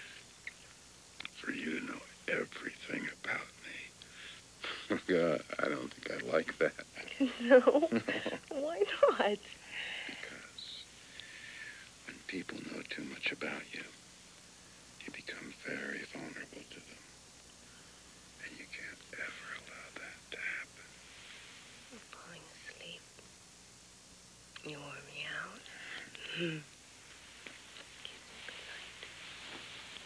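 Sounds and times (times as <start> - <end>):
person whispering: 18.4 - 20.7, 21.9 - 23.0, 28.0 - 29.2.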